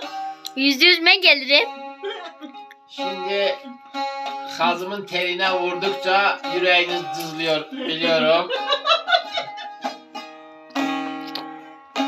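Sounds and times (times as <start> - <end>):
plucked lute strings strummed: 0.0 - 12.0.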